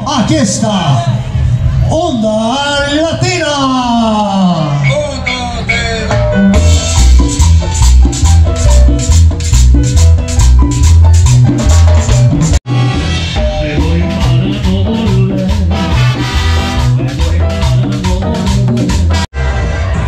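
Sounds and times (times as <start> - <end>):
latin dance orchestra playing: 4.4 - 20.0
heavy bass beat: 4.8 - 20.0
hand percussion: 4.9 - 12.6.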